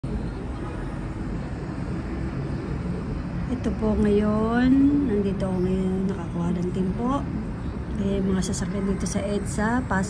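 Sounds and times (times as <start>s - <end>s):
heavy road traffic: 0.0s - 10.0s.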